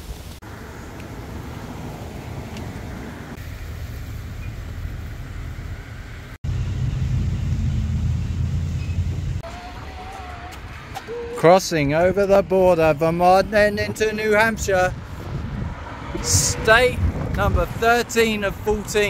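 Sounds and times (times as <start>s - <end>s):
low rumble of passing vehicle: 0.4s - 9.4s, 14.9s - 19.0s
cars going by: 0.4s - 19.0s.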